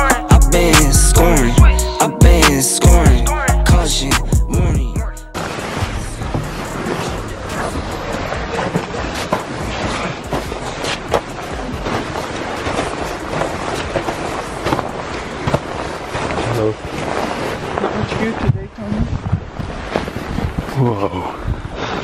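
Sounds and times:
footsteps crunching in snow: 5.4 - 20.9
microphone handling rustle: 5.4 - 22.0.

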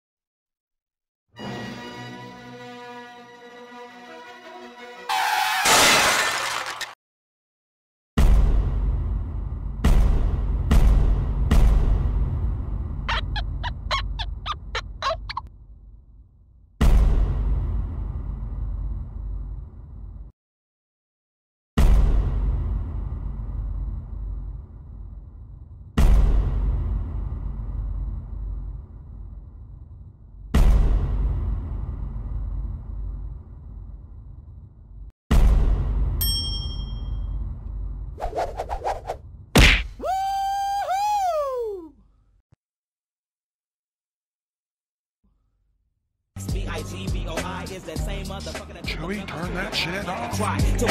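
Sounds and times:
short pitched bird-like calls: 13.1 - 15.4
low rumble: 15.5 - 20.3, 22.2 - 36.2
bright metallic ding: 36.2 - 37.3.

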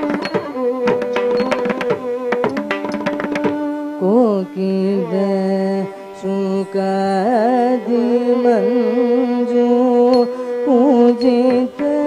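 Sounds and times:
sliding held-note melody: 0.0 - 5.4, 9.6 - 12.0.

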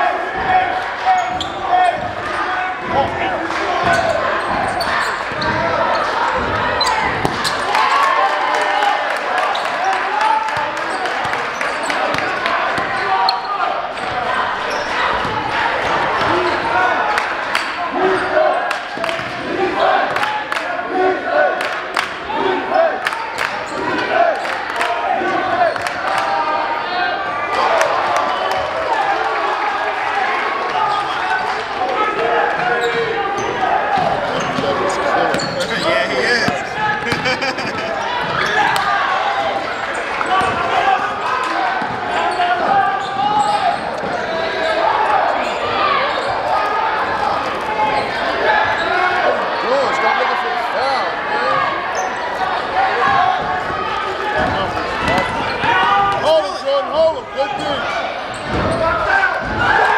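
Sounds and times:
people's voices: 0.0 - 59.9.

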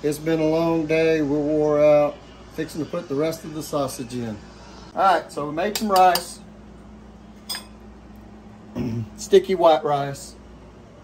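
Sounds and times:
faint steady hum: 0.0 - 11.0
spoon clinking ceramic bowl: 7.4 - 7.8.

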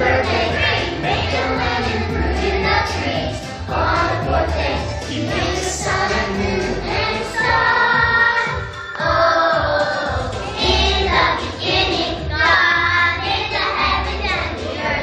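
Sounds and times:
children singing in unison: 0.0 - 15.0
musical accompaniment with bass: 0.0 - 15.0.

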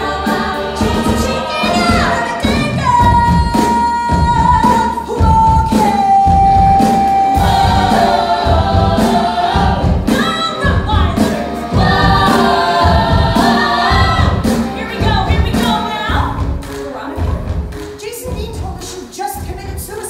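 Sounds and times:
band with steady drum beat: 0.0 - 20.0
cast singing in chorus: 7.4 - 10.0.

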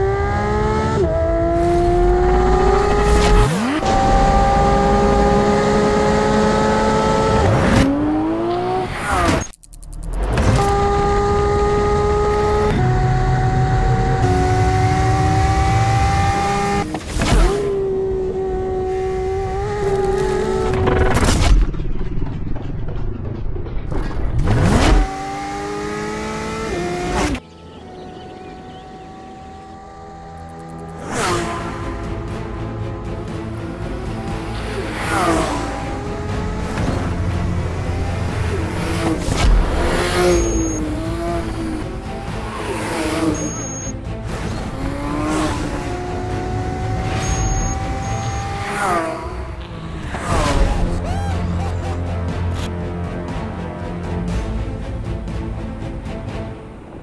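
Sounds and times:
race car engine at high revs: 0.0 - 9.6, 10.2 - 21.2, 24.5 - 27.4, 33.2 - 50.9.

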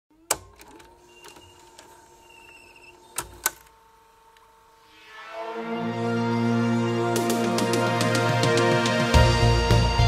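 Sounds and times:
faint steady hum: 0.2 - 5.0.

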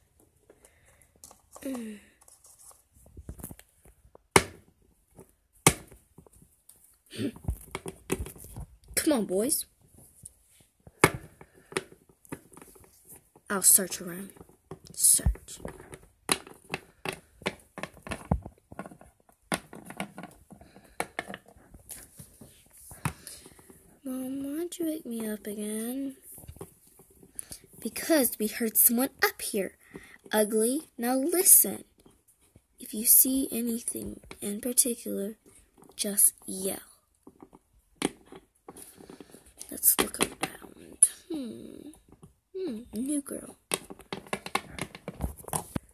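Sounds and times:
plastic toys clicking on countertop: 43.7 - 45.2.

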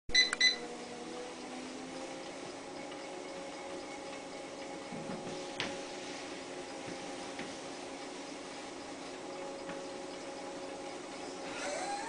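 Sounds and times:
short electronic beeps: 0.1 - 0.7
treadmill motor and belt running: 0.1 - 12.0.

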